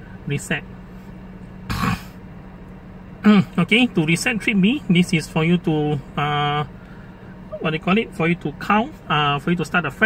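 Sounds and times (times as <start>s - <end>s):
man clearing his throat: 1.7s - 2.2s.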